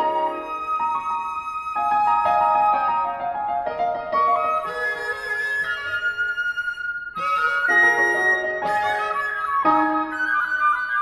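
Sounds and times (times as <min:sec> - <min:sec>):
flute: 0:00.0 - 0:11.0
piano: 0:00.0 - 0:11.0
cello: 0:03.4 - 0:10.0.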